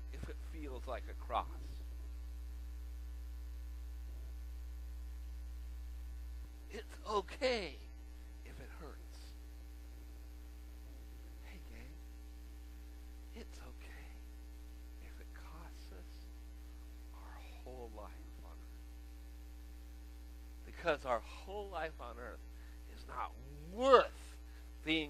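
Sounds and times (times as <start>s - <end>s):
electrical mains hum: 0.0s - 25.0s.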